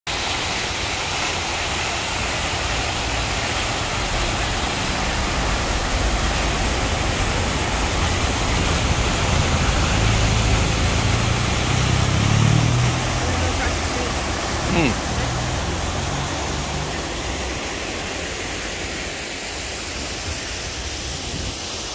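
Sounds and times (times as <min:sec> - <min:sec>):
water pouring into stone basin: 0:00.1 - 0:20.5.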